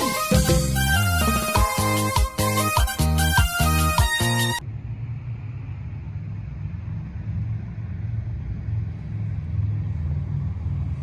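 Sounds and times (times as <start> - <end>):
low wavering outdoor rumble: 4.6 - 11.0.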